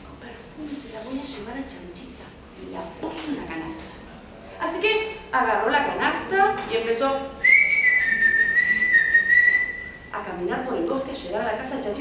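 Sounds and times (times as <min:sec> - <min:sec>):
person whistling high note: 0:07.4 - 0:10.1.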